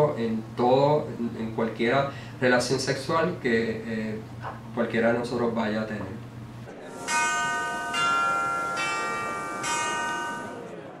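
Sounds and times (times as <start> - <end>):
bell-like chimes: 6.9 - 10.6.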